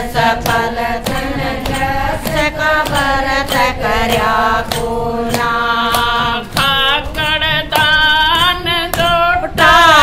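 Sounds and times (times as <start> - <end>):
hand claps: 0.0 - 10.0
women singing devotional song: 0.0 - 10.0.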